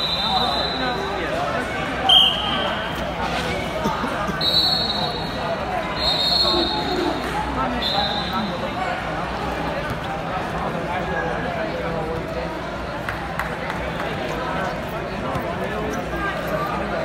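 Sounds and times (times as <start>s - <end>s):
referee whistle blasts: 0.0s - 1.1s, 2.1s - 2.8s, 4.4s - 5.3s, 6.0s - 7.0s, 7.8s - 8.5s
crowd chatter: 0.0s - 17.0s.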